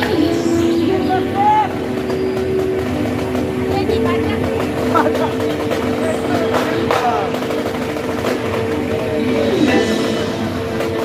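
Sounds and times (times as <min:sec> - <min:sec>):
marching band brass chords: 0:00.0 - 0:11.0
voices calling out: 0:00.0 - 0:11.0.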